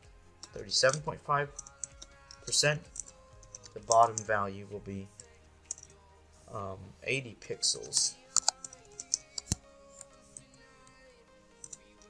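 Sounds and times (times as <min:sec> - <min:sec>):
faint background music: 0:00.0 - 0:12.0
keyboard typing: 0:00.4 - 0:04.3, 0:07.9 - 0:09.6.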